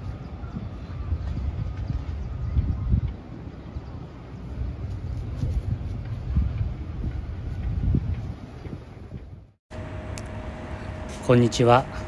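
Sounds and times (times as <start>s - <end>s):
wind rumbling on microphone: 0.0s - 9.6s.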